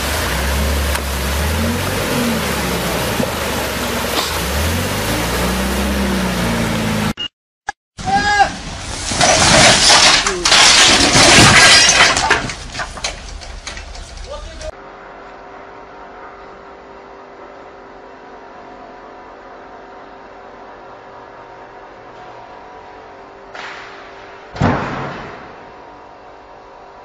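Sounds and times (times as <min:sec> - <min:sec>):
people shouting: 0:08.0 - 0:08.6
crash and clatter of breaking: 0:08.8 - 0:14.3.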